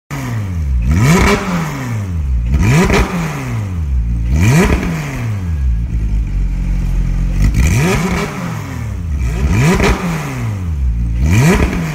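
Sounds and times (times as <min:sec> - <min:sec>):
car engine revving: 0:00.1 - 0:11.9.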